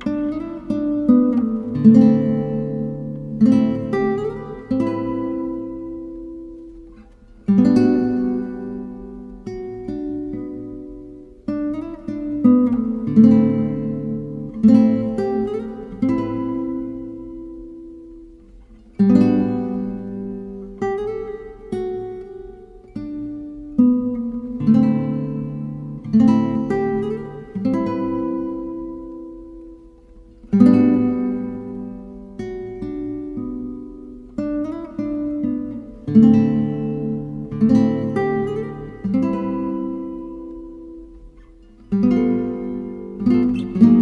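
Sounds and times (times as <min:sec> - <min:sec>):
acoustic guitar slow chords: 0:00.0 - 0:44.0.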